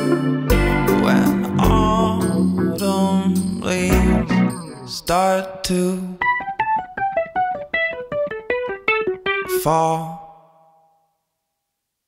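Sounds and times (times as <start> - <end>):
guitar plucked notes run: 0.0 - 10.5.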